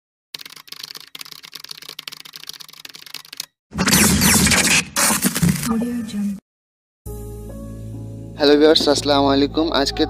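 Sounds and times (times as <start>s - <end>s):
rapid keyboard typing clicks: 0.4s - 3.5s.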